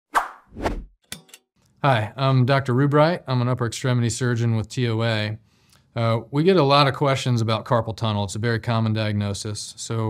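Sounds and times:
man's voice: 1.8 - 5.4, 6.0 - 10.0.

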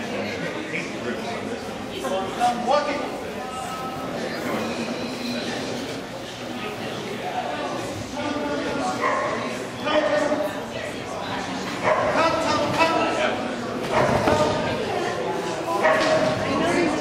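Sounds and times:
dog barking: 9.0 - 9.4, 15.8 - 16.2.

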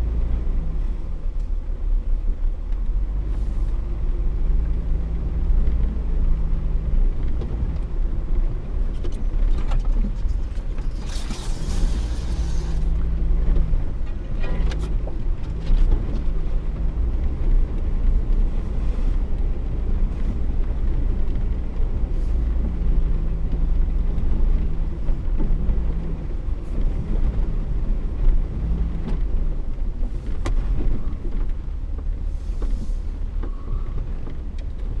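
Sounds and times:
vehicle engine low revs: 0.0 - 35.0.

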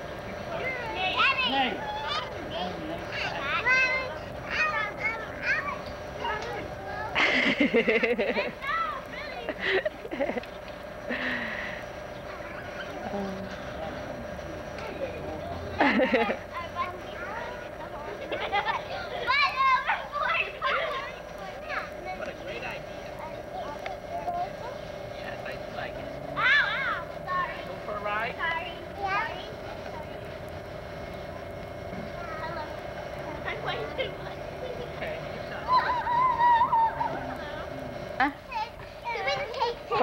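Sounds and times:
steady hum: 0.0 - 40.0
children calling out and squealing: 8.4 - 9.6, 12.1 - 13.5, 16.3 - 22.1, 26.4 - 27.6, 35.6 - 37.8.

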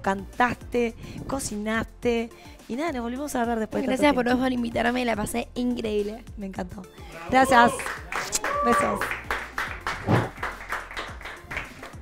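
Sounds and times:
group clapping: 7.1 - 12.0.

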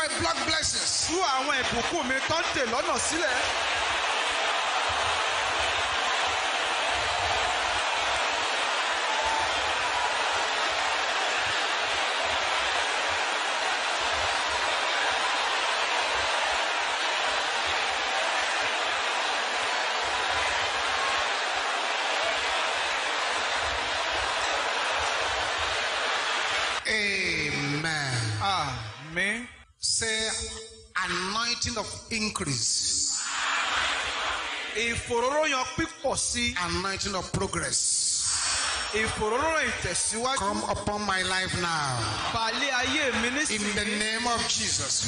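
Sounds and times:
congregation praying aloud: 38.1 - 45.0.

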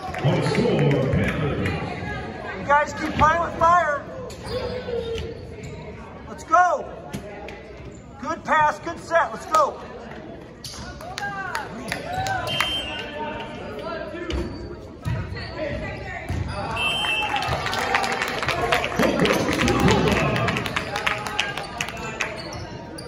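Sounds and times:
sneakers squeaking: 4.2 - 6.2, 14.2 - 17.6, 21.6 - 23.0
people shouting and cheering: 16.6 - 22.1.

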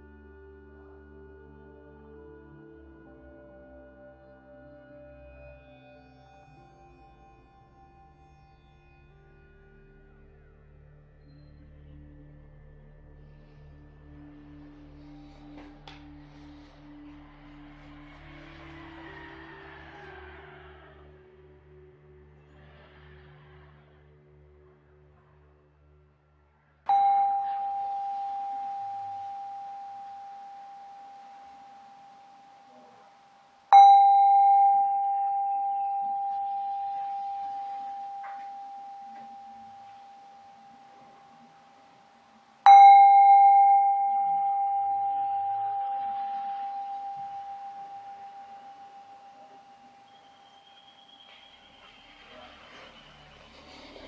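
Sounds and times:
singing bowl ringing: 26.9 - 52.4.

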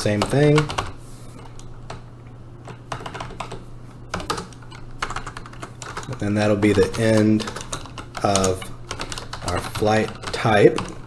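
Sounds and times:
computer keyboard typing: 0.0 - 2.0, 2.6 - 11.0
steady low hum: 0.0 - 11.0.

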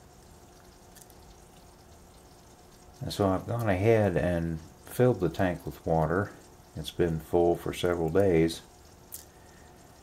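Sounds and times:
background hiss: 0.0 - 10.0
faint hum: 0.0 - 10.0.

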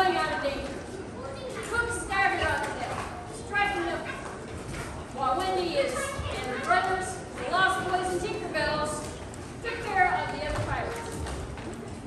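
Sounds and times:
voices from a stage performance: 0.0 - 11.4.

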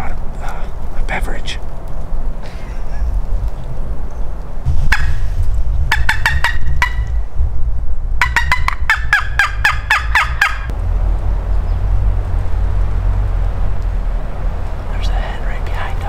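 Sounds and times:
low rumble: 0.0 - 16.0
wild turkey yelping: 8.2 - 10.7.

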